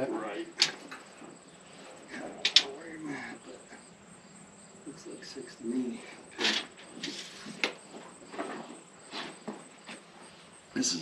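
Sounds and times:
high insect trill: 0.0 - 11.0
low voice murmuring: 2.0 - 3.8
sharp clicks: 2.4 - 2.7.

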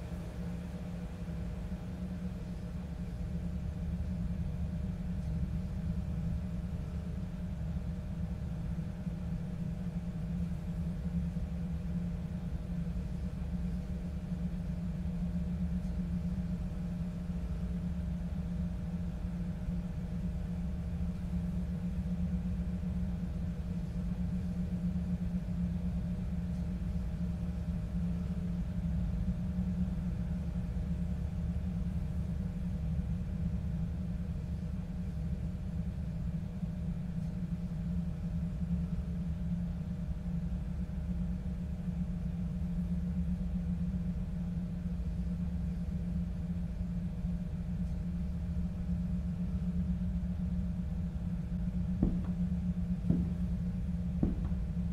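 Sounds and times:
faint high hum: 0.0 - 54.9
low rumbling drone: 49.2 - 54.9.

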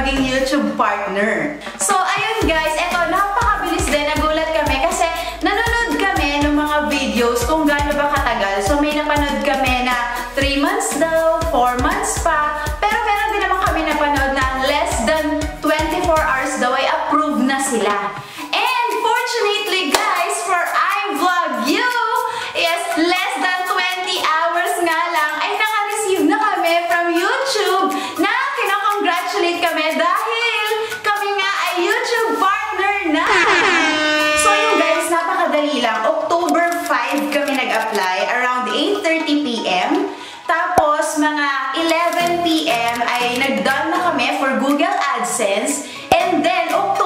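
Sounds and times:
background music: 0.0 - 47.0
hand clap: 19.9 - 20.2.

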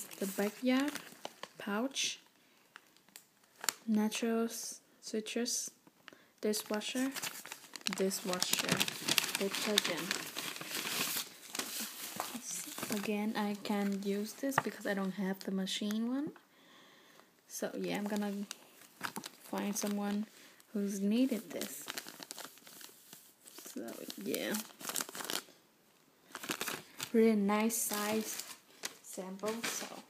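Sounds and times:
cellophane crinkling: 0.0 - 1.7, 2.7 - 3.9, 6.5 - 15.4, 17.8 - 25.5, 26.2 - 30.0.

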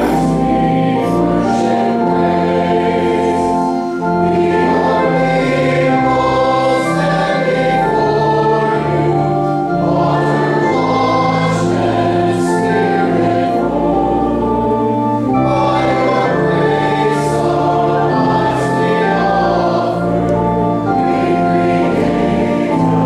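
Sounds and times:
congregation singing: 0.0 - 23.0.

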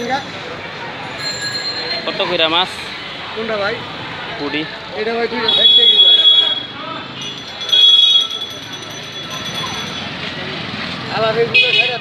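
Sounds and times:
distant chatter: 0.0 - 12.0
faint voices: 0.0 - 12.0
traffic noise: 0.0 - 12.0.

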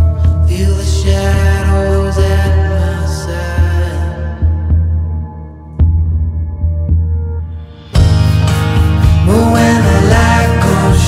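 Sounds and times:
drone-like chords over pulsing beat: 0.0 - 11.0.

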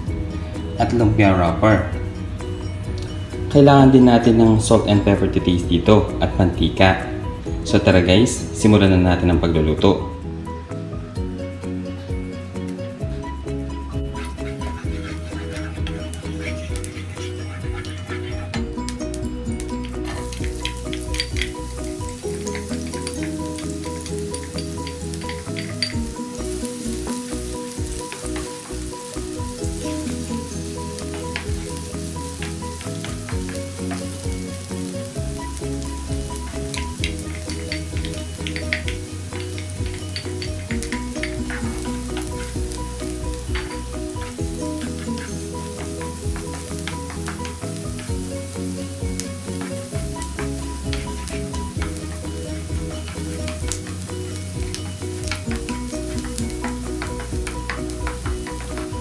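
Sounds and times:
background music: 0.0 - 59.0
onion sizzling in hot oil: 10.2 - 59.0
wooden spatula stirring: 14.0 - 18.9, 19.7 - 59.0.

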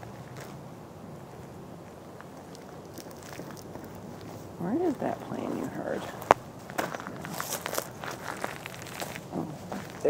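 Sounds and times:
footsteps crunching on gravel: 1.2 - 10.0.

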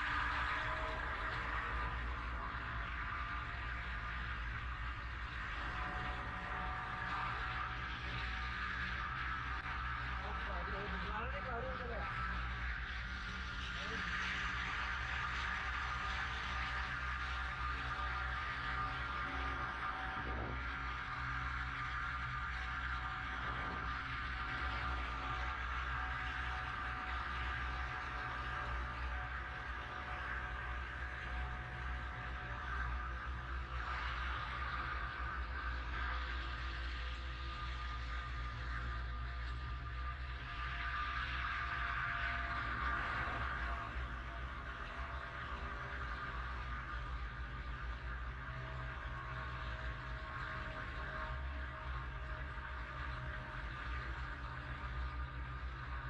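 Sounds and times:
cable car mechanical hum: 0.0 - 56.0.

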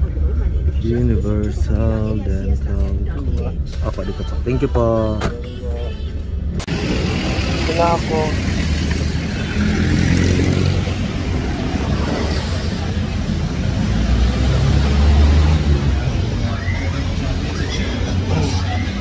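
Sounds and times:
traffic engines rumbling: 0.0 - 19.0.

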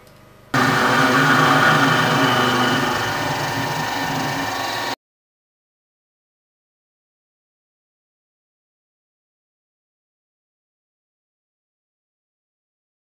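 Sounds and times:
milling machine running: 0.6 - 5.0.

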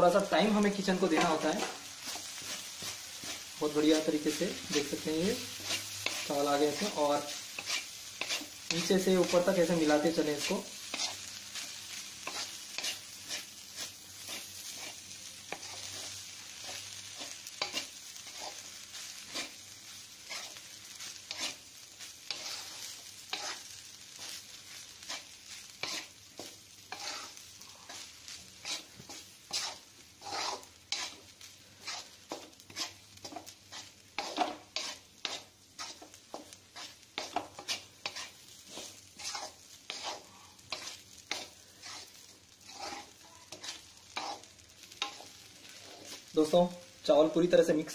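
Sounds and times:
faint sizzle: 0.0 - 47.9
spatula scraping a pan: 0.4 - 46.5.

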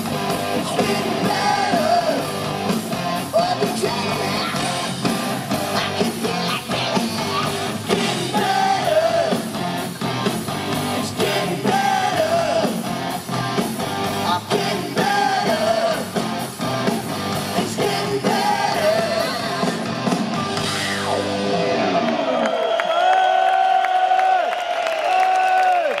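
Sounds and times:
drums: 0.0 - 22.5
electric guitars: 0.0 - 22.6
person singing lead vocal: 0.4 - 20.0.

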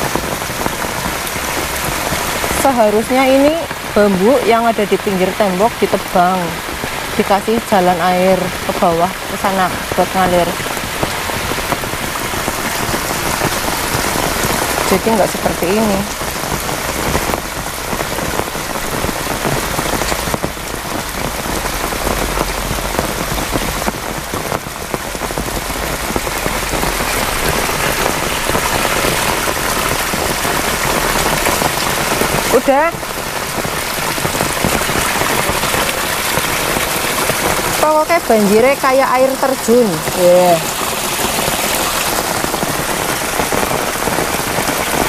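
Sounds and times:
heavy rain on puddles: 0.0 - 45.0.

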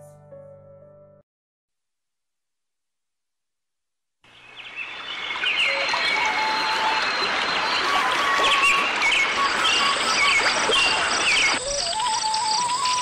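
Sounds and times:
small birds chirping: 4.3 - 13.0.

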